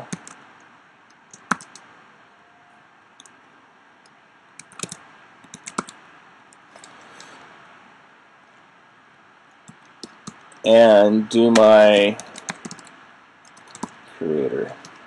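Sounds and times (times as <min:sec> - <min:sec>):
computer keyboard typing: 0:00.0 - 0:00.4, 0:01.3 - 0:01.9, 0:04.6 - 0:06.0, 0:09.6 - 0:10.7, 0:11.5 - 0:14.0.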